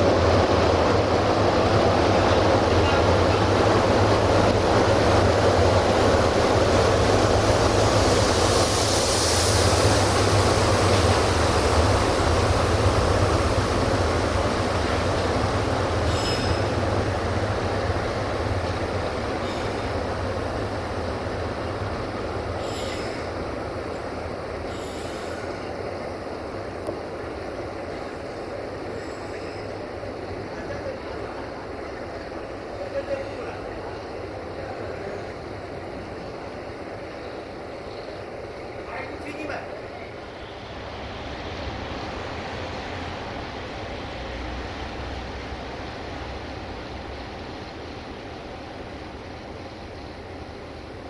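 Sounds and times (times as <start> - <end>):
train wheels rolling on track: 0.0 - 51.0.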